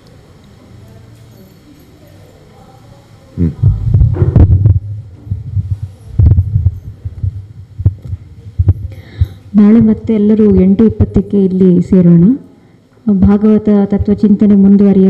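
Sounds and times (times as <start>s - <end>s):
microphone handling thumps: 3.5s - 10.8s
woman speaking into microphone: 8.6s - 15.0s.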